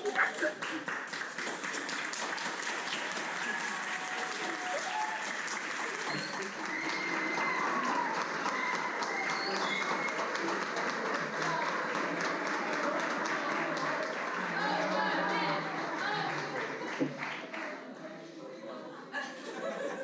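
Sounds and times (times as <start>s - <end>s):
people's voices: 0.0s - 0.9s, 3.2s - 20.0s
audience applauding: 0.0s - 18.0s.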